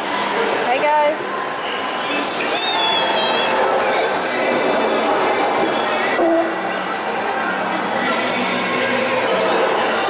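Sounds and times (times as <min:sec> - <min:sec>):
hubbub of busy food court: 0:00.0 - 0:10.0
brief higher tone: 0:06.2 - 0:06.8.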